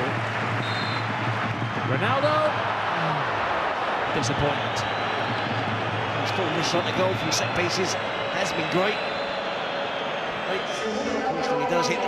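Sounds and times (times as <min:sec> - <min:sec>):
stadium crowd noise: 0:00.0 - 0:12.0.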